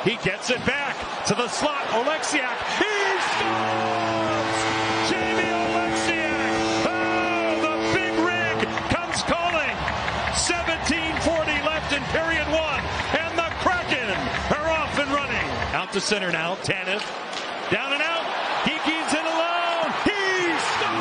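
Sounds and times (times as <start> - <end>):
crowd cheering: 0.0 - 21.0
goal horn low note: 3.2 - 15.4.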